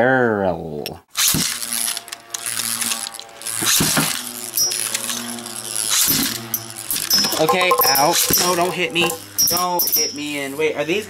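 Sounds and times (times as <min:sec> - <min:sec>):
spinning tops whirring: 0:02.4 - 0:09.8
sharp clacks of tops striking: 0:07.0 - 0:09.6.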